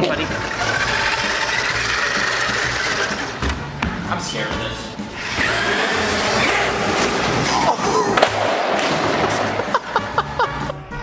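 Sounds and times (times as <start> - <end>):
electric motor whining: 0.2 - 3.5, 5.2 - 7.4.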